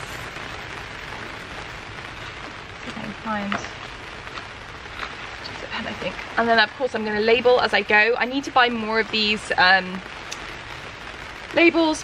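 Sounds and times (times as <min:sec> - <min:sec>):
rain on plastic cover: 0:00.0 - 0:12.0.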